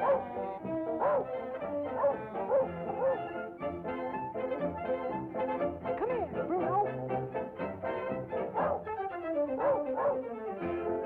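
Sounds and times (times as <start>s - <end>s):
cartoon dog yipping: 0.0s - 1.3s
orchestral music: 0.0s - 11.0s.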